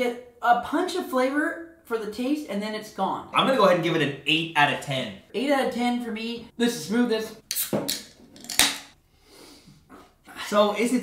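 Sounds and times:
beer can opening crack: 7.5s - 8.9s.

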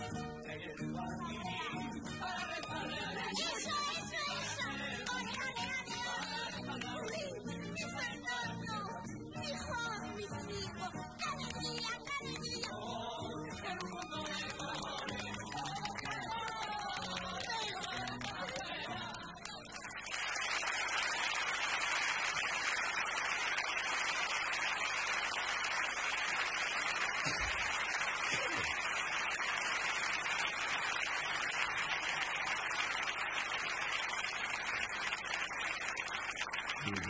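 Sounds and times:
audience applauding: 2.3s - 7.3s, 13.6s - 37.0s.

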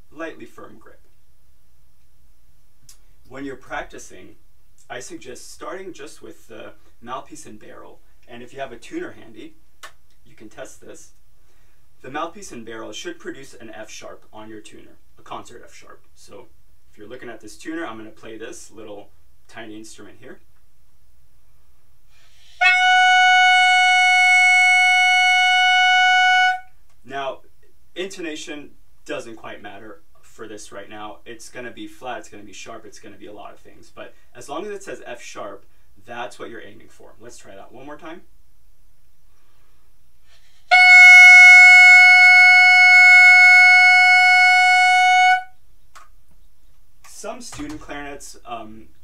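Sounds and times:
clarinet mouthpiece steady note: 22.6s - 26.8s, 40.7s - 45.6s.

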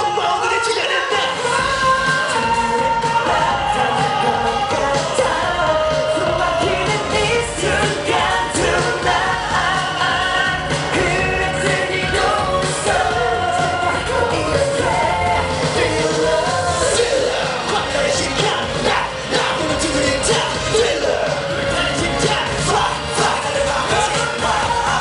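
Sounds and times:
boy band singing live: 0.0s - 25.0s
pop backing track with dance beat: 0.0s - 25.0s.

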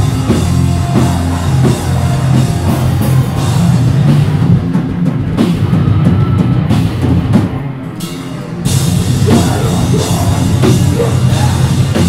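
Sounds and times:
drum kit: 0.0s - 12.0s
hardcore band playing live: 0.0s - 12.0s.

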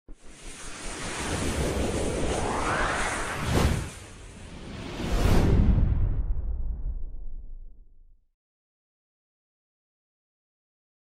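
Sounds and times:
rushing whoosh: 0.2s - 7.2s
low rumble: 1.4s - 8.2s.

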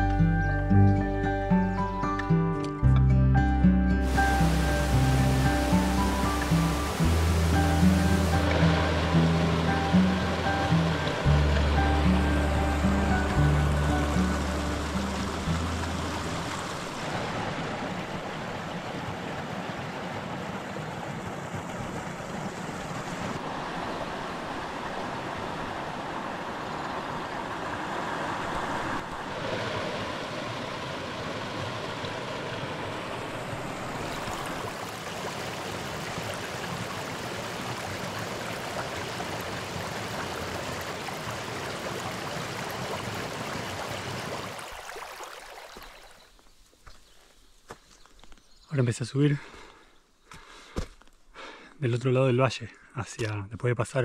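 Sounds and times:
background music: 0.0s - 16.7s
stream running over rocks: 4.0s - 49.8s.

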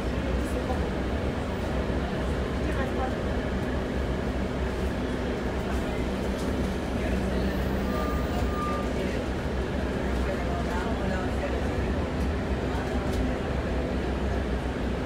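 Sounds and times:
bus engine rumbling: 0.0s - 15.0s
road and interior noise: 0.0s - 15.0s.

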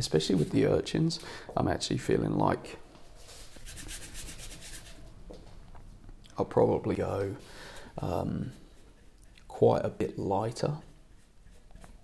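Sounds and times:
paintbrush scrubbing paint: 3.2s - 5.2s, 7.8s - 12.0s.

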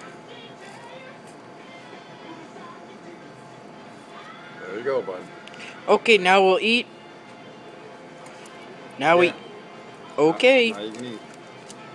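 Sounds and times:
restaurant background noise: 0.0s - 11.9s.

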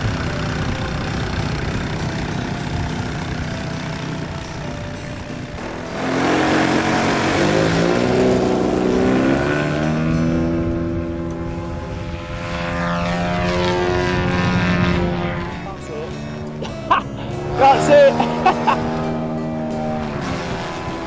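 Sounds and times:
model plane propeller engine: 0.0s - 9.8s, 10.4s - 16.6s.

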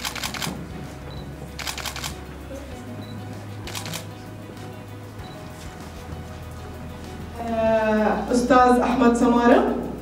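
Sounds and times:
camera shutter clicks: 0.0s - 0.5s, 1.6s - 2.2s, 3.7s - 4.1s
quiet background music: 0.0s - 10.0s.

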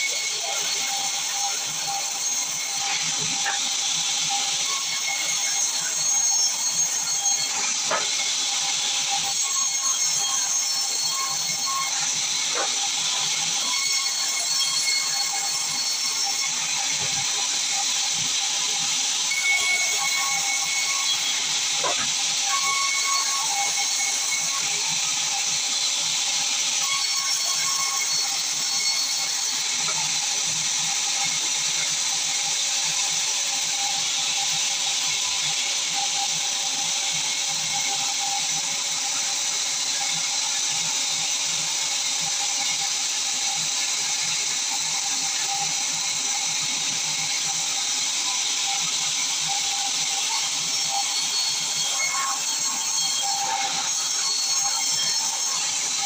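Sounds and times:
band saw cutting log: 0.0s - 56.0s.

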